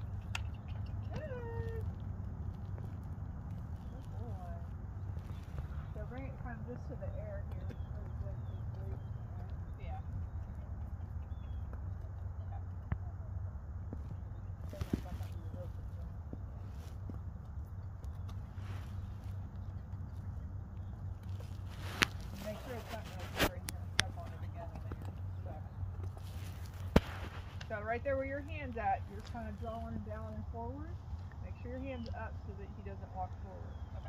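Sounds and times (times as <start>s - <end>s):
steady low rumble: 0.0s - 34.0s.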